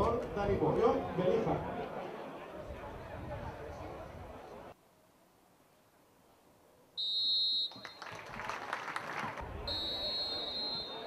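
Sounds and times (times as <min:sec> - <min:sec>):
referee's whistle blast: 0:07.0 - 0:07.8, 0:09.7 - 0:11.0
crowd applauding: 0:07.7 - 0:09.7.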